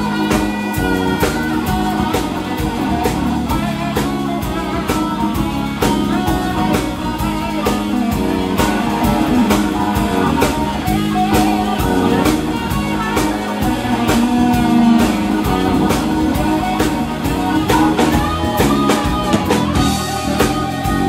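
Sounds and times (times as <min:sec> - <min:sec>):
drum kit beat: 0:00.0 - 0:21.0
electric guitar: 0:00.0 - 0:21.0
keyboard: 0:00.0 - 0:21.0.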